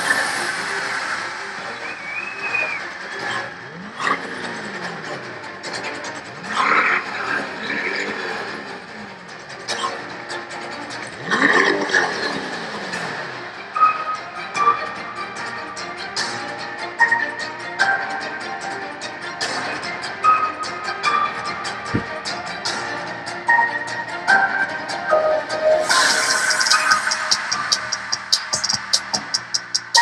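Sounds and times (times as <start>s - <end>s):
crowd clapping and cheering: 0.0s - 5.7s, 25.8s - 30.0s
car engine revving: 0.0s - 17.8s, 24.1s - 30.0s.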